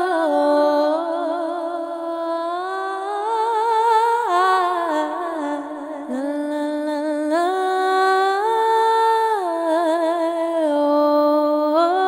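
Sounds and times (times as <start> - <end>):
person singing wordlessly: 0.0 - 12.0.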